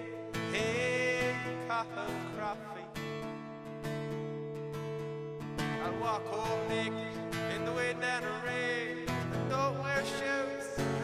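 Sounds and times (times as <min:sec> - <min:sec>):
person singing: 0:00.0 - 0:03.0, 0:05.7 - 0:11.0
acoustic guitar strumming chords: 0:00.0 - 0:11.0.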